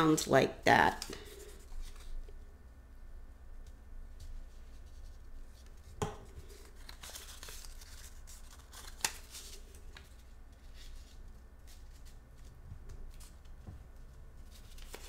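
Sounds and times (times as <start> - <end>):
paper rustling: 4.2 - 15.0.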